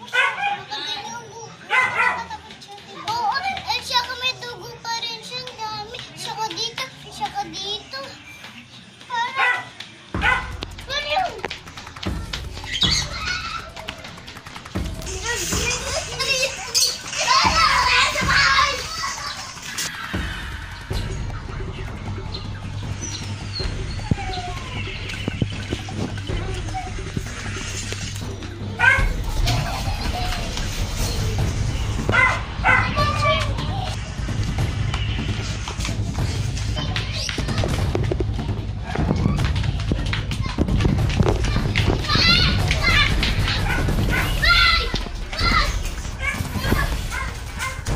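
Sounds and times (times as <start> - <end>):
children shouting and playing: 0.0 - 47.9.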